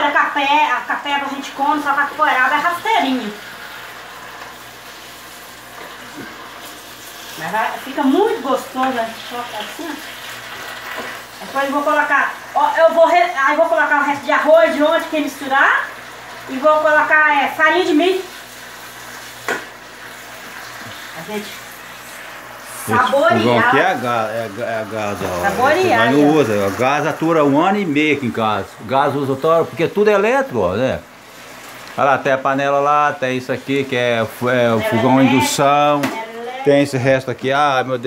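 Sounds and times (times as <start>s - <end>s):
greens sizzling in a pan: 0.0s - 38.0s.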